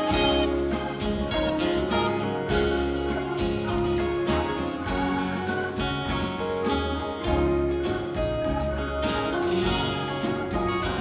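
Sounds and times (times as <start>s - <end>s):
bass line: 0.0s - 11.0s
guitars: 0.0s - 11.0s.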